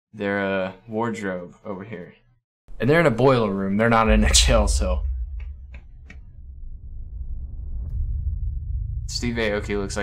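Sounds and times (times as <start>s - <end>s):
deep bass rumble: 3.8s - 10.0s.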